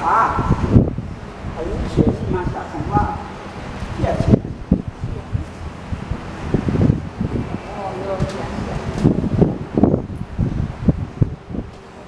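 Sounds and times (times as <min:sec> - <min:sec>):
wind buffeting microphone: 0:00.0 - 0:12.0
man's voice: 0:01.6 - 0:03.4.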